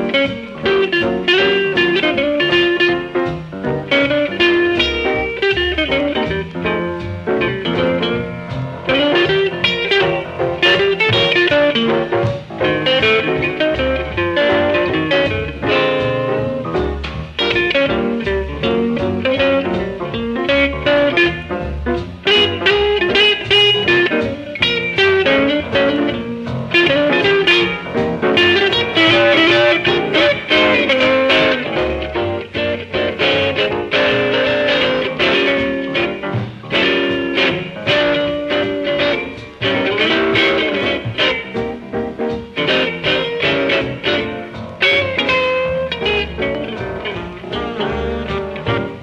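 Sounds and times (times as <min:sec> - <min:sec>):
electric guitar lead line: 0:00.0 - 0:49.0
swing music record: 0:00.0 - 0:49.0.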